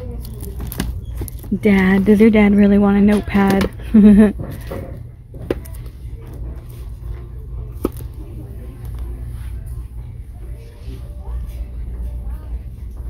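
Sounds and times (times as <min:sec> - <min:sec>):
low steady hum: 0:00.0 - 0:13.0
woman laughing: 0:03.8 - 0:04.6.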